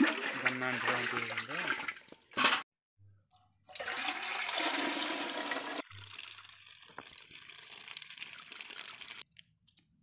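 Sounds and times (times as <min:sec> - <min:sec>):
water pouring into metal pot: 0:00.0 - 0:02.4, 0:03.7 - 0:09.2.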